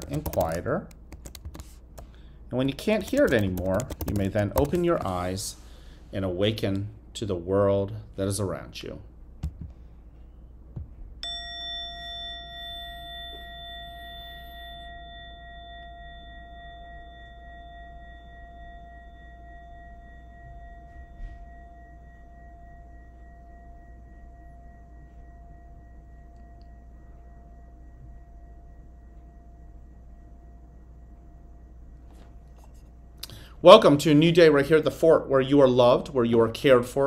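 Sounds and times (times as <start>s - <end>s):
meditation chime ringing: 11.2s - 34.7s.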